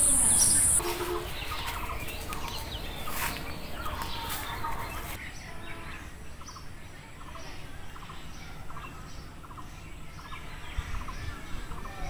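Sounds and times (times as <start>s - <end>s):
faint high bird chirps: 0.0s - 1.6s.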